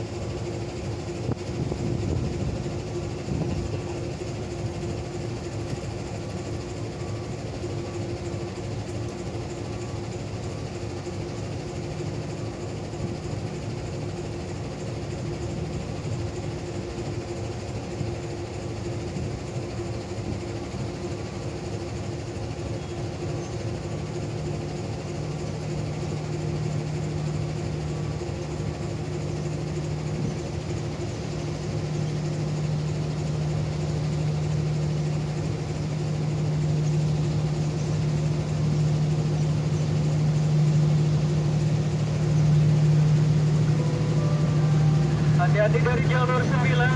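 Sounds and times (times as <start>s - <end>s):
diesel locomotive engine humming: 0.0s - 46.9s.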